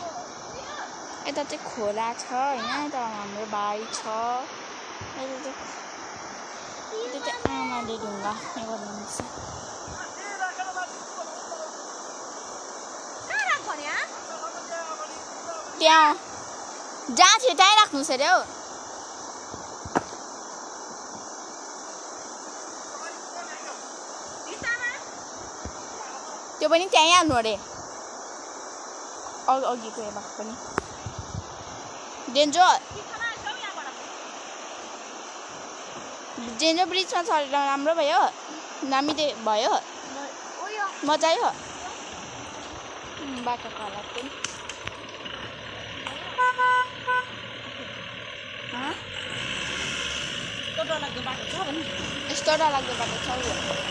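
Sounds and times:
high insect drone: 0.0 - 53.9
car horn beeps: 46.3 - 47.4.

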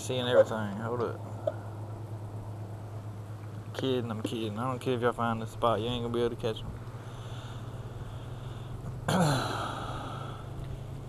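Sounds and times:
man clearing his throat: 9.1 - 9.7.

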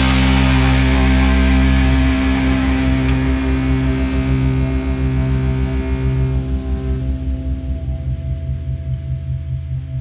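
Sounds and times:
amplifier hum: 0.0 - 10.0
distorted guitars and bass chord: 0.0 - 10.0
fast low throb: 0.0 - 10.0.

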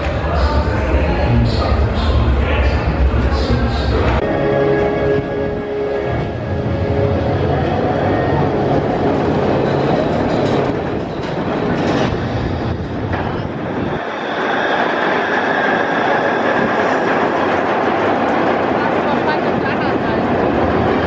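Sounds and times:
roller coaster rattling rumble: 5.1 - 21.0.

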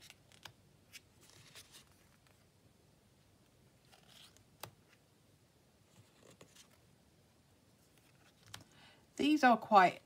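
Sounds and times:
card rustling: 0.0 - 2.5, 3.4 - 5.0, 5.8 - 6.9, 7.8 - 8.8.

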